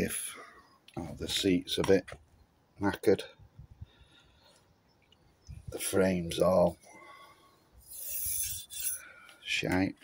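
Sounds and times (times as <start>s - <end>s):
fingertip rasping on painted metal: 7.8s - 9.0s.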